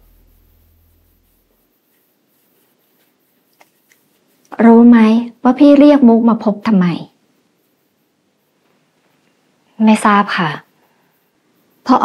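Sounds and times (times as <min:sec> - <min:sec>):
low music drone: 0:00.0 - 0:01.6.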